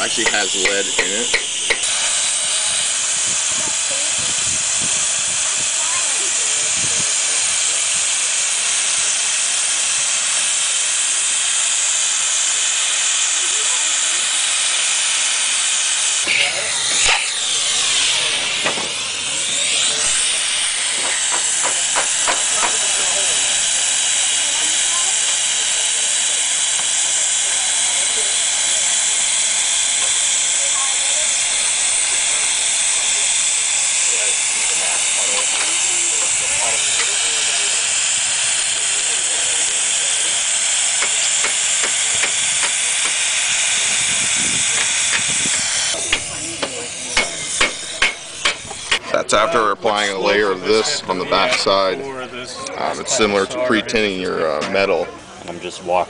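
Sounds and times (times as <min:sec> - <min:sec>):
burner hissing: 0:00.0 - 0:56.0.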